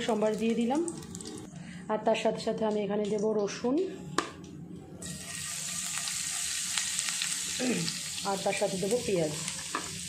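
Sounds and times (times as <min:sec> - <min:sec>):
garlic and chilli sizzling in oil: 0:00.0 - 0:01.5, 0:05.0 - 0:10.0.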